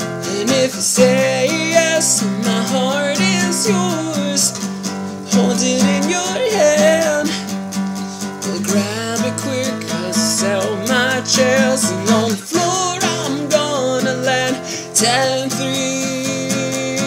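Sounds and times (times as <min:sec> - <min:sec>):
man singing: 0:00.0 - 0:17.0
strummed acoustic guitar: 0:00.0 - 0:17.0.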